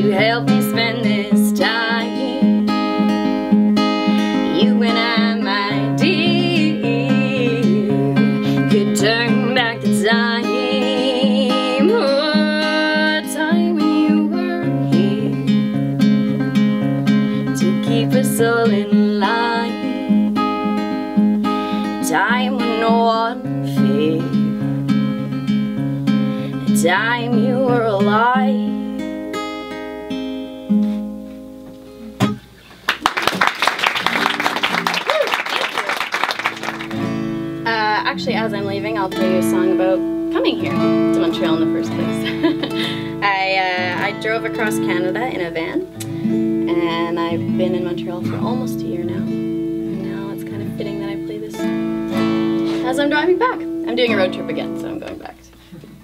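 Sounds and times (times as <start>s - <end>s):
woman singing: 0.0s - 2.9s, 4.4s - 15.7s, 17.4s - 20.2s, 22.0s - 24.4s, 26.7s - 28.8s, 37.7s - 46.0s, 46.6s - 51.7s
acoustic guitar: 0.0s - 56.0s
audience applause: 32.9s - 37.2s.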